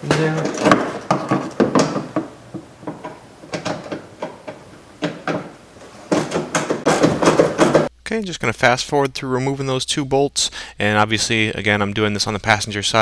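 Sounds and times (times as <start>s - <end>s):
knocking against plastic liner: 0.0s - 5.5s, 6.1s - 7.9s.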